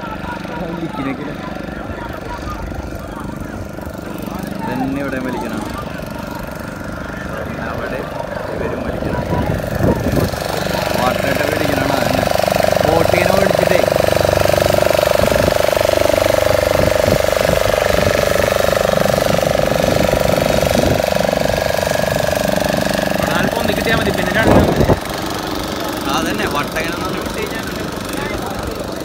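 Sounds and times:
outboard motor drone: 0.0s - 29.0s.

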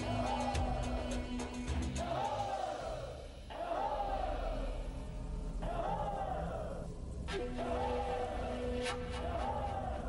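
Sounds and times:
men chanting a war cry: 0.0s - 10.0s.

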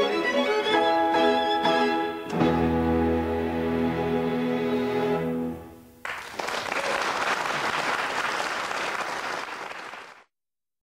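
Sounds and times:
audience applauding: 6.0s - 10.3s.

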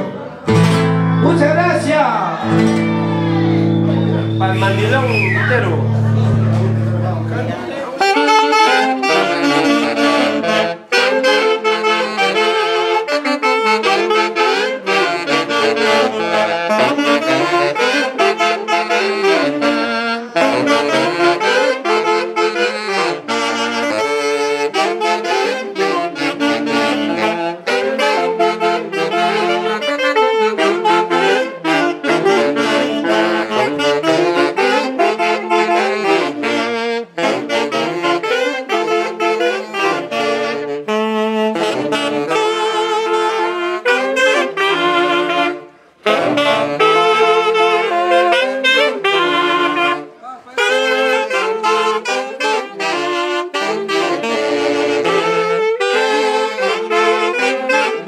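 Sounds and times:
saxophone ensemble playing: 0.0s - 58.0s.

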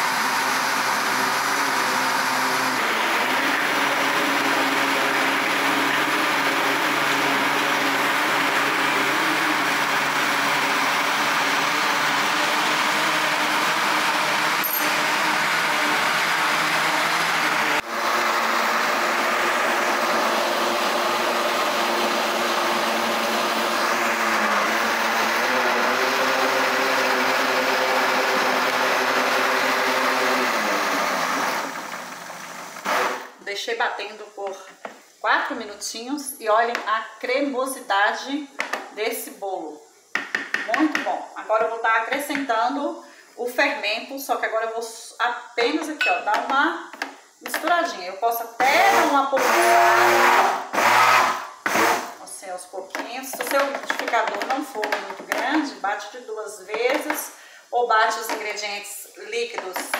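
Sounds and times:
blender motor running: 0.0s - 33.4s, 48.6s - 52.2s.

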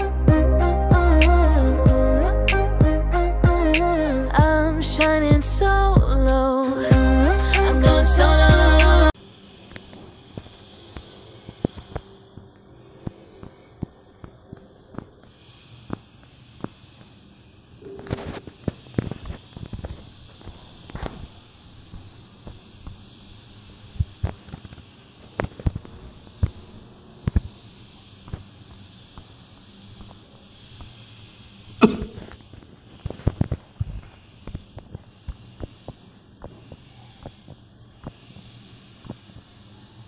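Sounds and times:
guitar chords picked: 6.9s - 9.1s.

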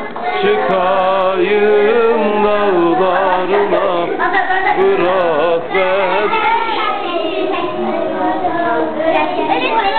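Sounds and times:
children singing: 0.0s - 9.9s.

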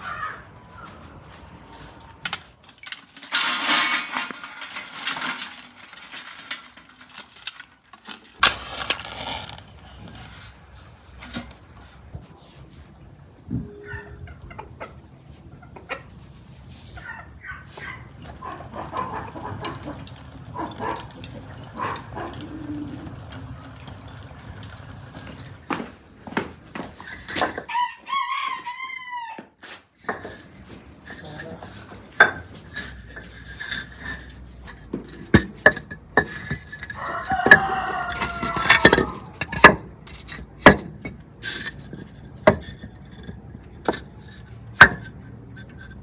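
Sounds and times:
charcoal crackling: 0.5s - 13.0s, 16.1s - 27.6s, 30.0s - 46.0s
rooster crowing: 27.7s - 29.6s, 37.0s - 39.4s.

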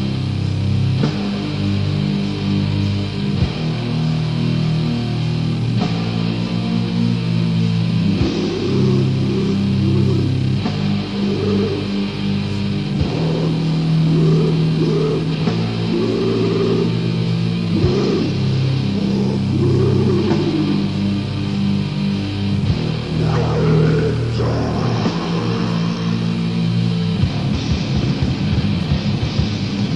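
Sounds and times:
distorted electric guitars and bass: 0.0s - 29.9s
drums: 0.0s - 29.9s.

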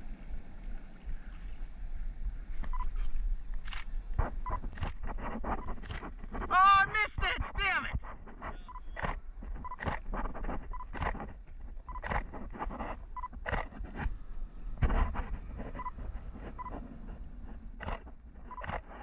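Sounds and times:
low wind rumble: 0.0s - 6.6s, 7.4s - 19.0s.

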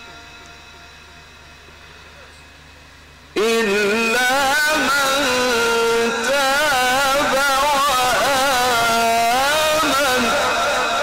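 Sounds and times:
electronic hum and hiss: 0.0s - 11.0s
echoing chanted voice: 3.4s - 11.0s.

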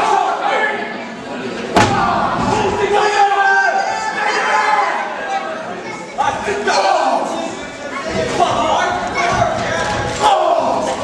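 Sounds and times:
crowd voices: 0.0s - 11.0s
sharp impact in wrestling ring: 1.8s - 2.9s.

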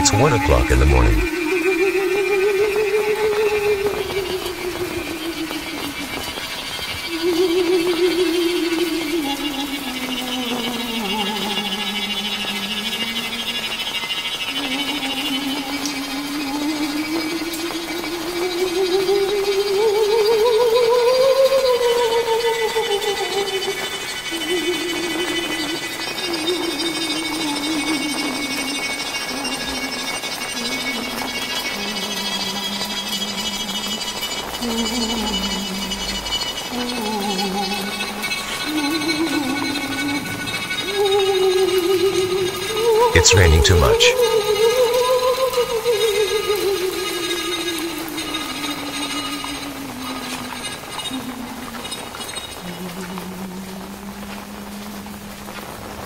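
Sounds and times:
rain hissing: 45.5s - 56.0s.

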